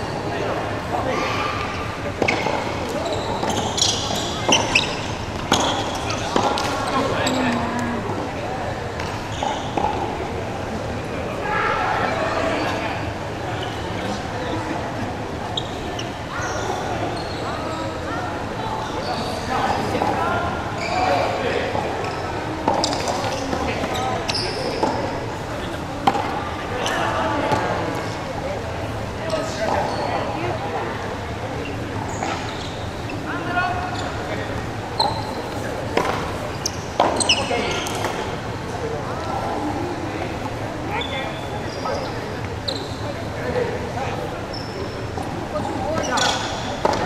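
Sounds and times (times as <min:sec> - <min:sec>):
players' voices: 0:00.0 - 0:47.0
sneakers squeaking on wood floor: 0:01.6 - 0:07.6, 0:08.9 - 0:10.0, 0:15.5 - 0:18.1, 0:20.8 - 0:25.2, 0:31.6 - 0:38.4, 0:40.9 - 0:43.4, 0:44.5 - 0:47.0.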